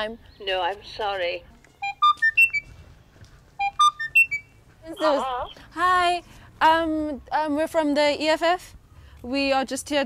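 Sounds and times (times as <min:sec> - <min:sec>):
intercom electronic beep melody: 0:01.8 - 0:02.7, 0:03.6 - 0:05.6.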